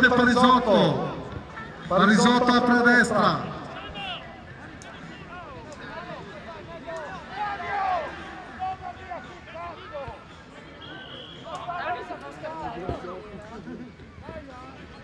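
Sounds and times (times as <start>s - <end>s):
players calling and shouting: 0.0s - 15.0s.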